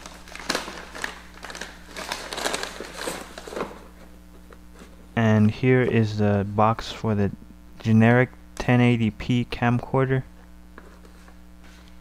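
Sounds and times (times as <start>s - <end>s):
plastic bag crinkling: 0.0s - 3.9s.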